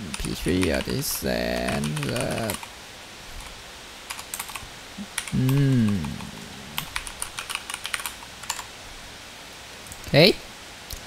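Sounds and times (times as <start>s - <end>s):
typing on computer keyboard: 1.6s - 2.7s, 4.1s - 4.6s, 6.8s - 8.7s.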